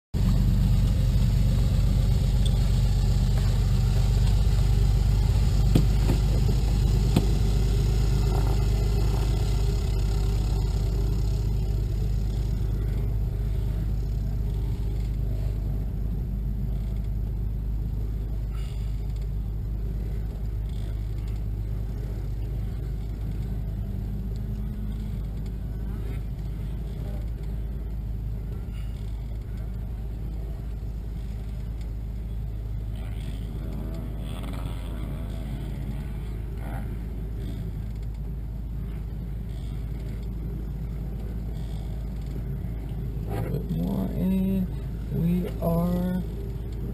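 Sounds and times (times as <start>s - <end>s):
low engine rumble: 0.1s - 46.9s.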